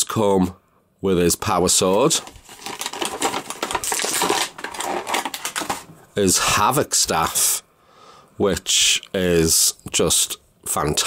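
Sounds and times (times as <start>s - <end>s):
plastic bag crinkling: 1.9s - 6.1s.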